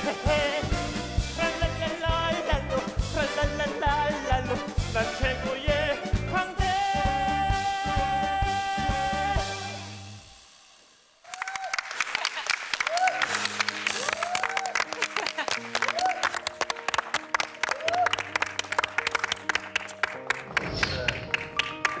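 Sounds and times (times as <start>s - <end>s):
whoops and cheers: 11.2s - 16.5s, 17.6s - 18.4s
audience applause: 11.2s - 22.0s
soft background music: 12.9s - 22.0s.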